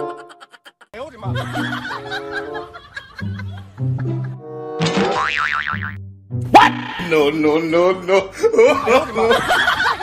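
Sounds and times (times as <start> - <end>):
cartoon spring boing: 4.8 - 6.0.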